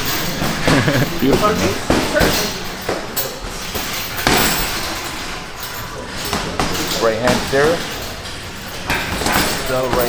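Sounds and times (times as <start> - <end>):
punches thudding on punching bag: 0.0 - 4.9, 8.8 - 10.0
busy gym background noise: 0.0 - 10.0.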